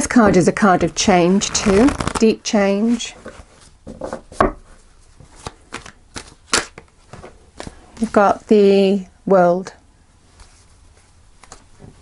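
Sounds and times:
cards shuffling and snapping: 1.5s - 2.3s, 5.3s - 6.9s, 11.4s - 11.7s.

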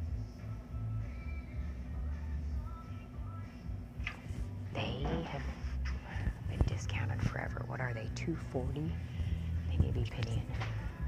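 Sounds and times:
low steady hum: 0.0s - 11.0s
woman whispering: 4.8s - 10.6s.

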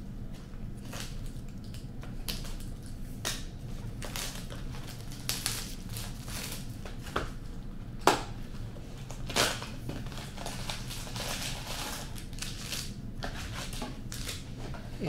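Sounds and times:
plastic wrapping tearing and crinkling: 0.8s - 7.2s, 9.0s - 14.4s.

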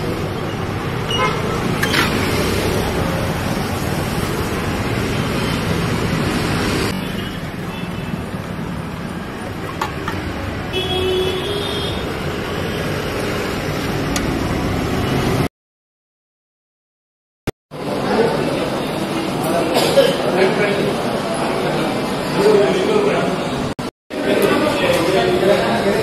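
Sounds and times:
traffic noise: 0.0s - 15.5s, 17.7s - 26.0s.

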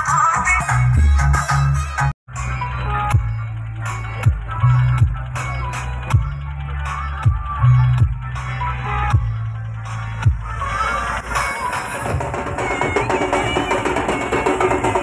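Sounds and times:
electronic dance music: 0.0s - 15.0s
heavy bass line: 0.0s - 15.0s.

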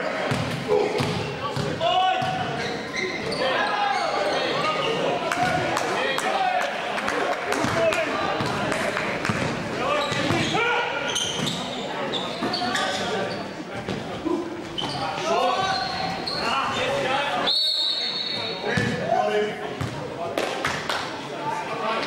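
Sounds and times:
sneakers squeaking: 0.1s - 5.6s, 9.2s - 19.0s.

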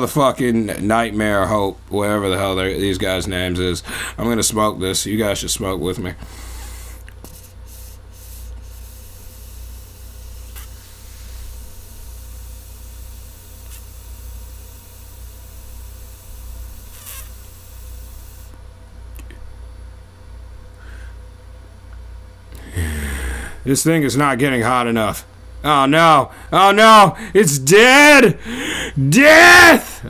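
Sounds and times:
low electrical hum: 0.0s - 30.0s
vape pen airy hiss: 6.3s - 18.6s.

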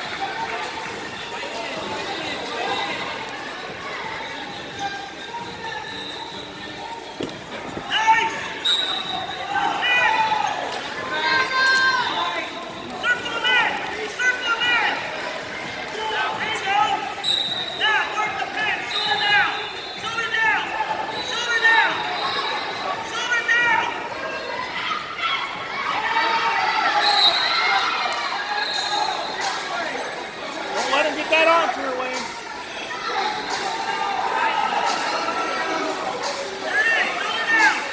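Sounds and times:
shoes squeaking on mat: 2.7s - 9.5s.

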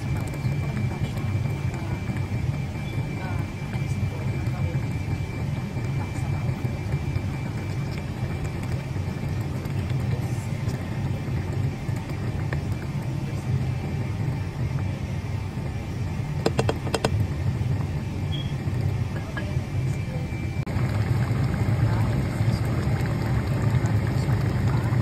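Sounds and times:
soup boiling in a pot: 0.0s - 25.0s.

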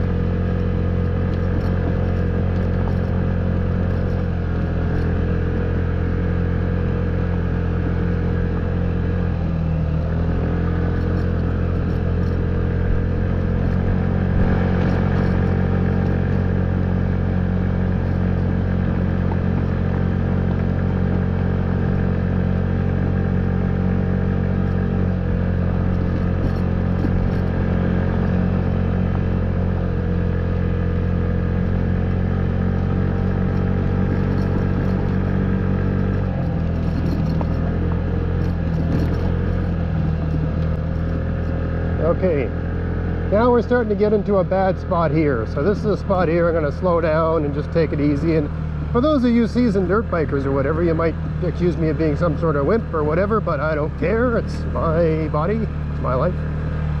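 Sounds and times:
scooter engine running: 0.0s - 57.0s.

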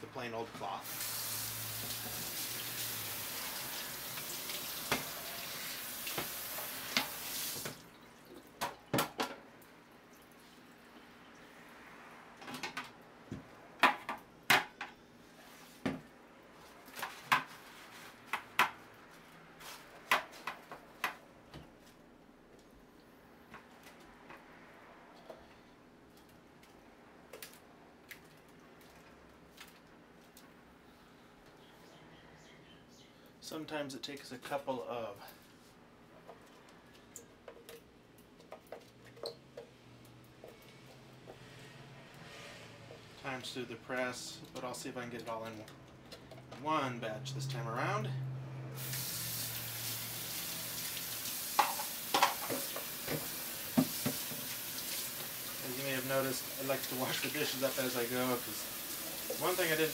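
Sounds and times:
tap running into steel sink: 51.6s - 54.5s.

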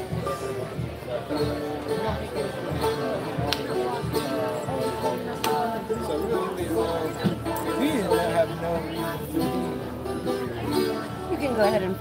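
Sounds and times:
plucked string instrument tune: 0.0s - 12.0s.

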